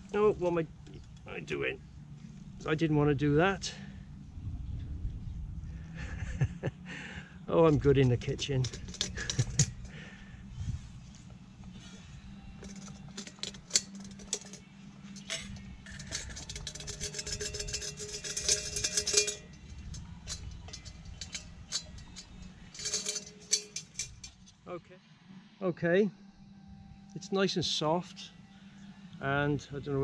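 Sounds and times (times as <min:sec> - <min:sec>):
metal pot clinking on metal plate: 0:12.6 - 0:24.3.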